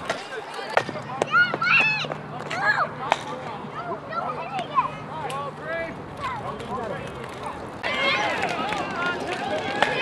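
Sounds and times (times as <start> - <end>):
people shouting and chattering: 0.0 - 10.0.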